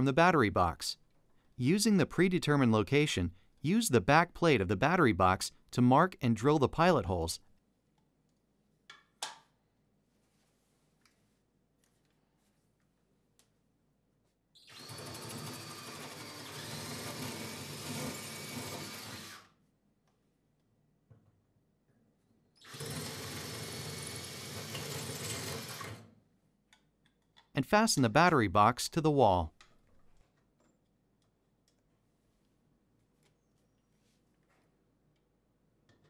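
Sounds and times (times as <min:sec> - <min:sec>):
cordless drill boring into tile: 0:14.7 - 0:19.5, 0:22.6 - 0:26.0.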